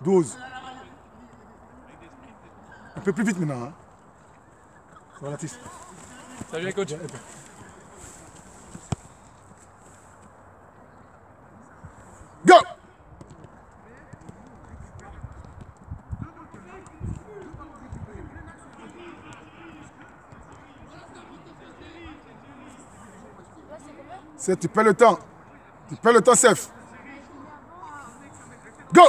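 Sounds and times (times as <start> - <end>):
running footsteps: 5.3 - 10.4
soft ball touches on turf: 5.6 - 10.3
person shouting: 12.4 - 12.8.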